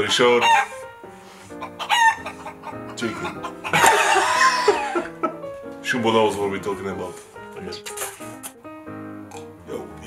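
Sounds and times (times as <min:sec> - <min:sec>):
background music with sustained notes: 0:00.0 - 0:10.0
chicken squawk: 0:00.4 - 0:00.8, 0:01.6 - 0:04.0.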